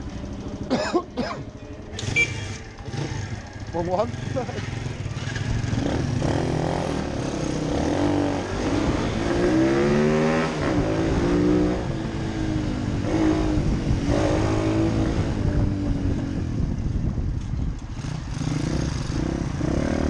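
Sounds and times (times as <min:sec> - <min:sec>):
pit bike engine accelerating: 0:01.9 - 0:16.7
wind on microphone: 0:10.4 - 0:19.8.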